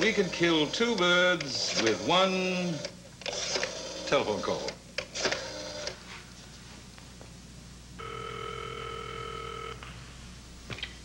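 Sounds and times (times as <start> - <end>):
telephone ringback tone: 8.0 - 9.9.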